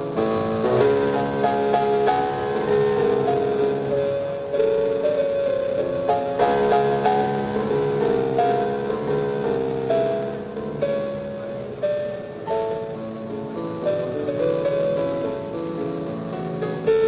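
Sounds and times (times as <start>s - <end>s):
solo piano: 0.0s - 17.0s.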